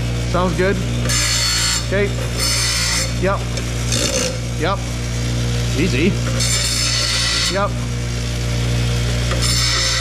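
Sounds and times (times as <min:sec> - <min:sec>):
bench grinder humming: 0:00.0 - 0:10.0
steel grinding on wheel: 0:00.9 - 0:10.0.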